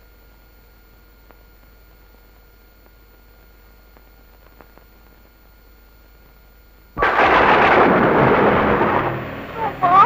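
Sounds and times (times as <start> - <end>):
loud crash of noise: 7.0 - 10.0.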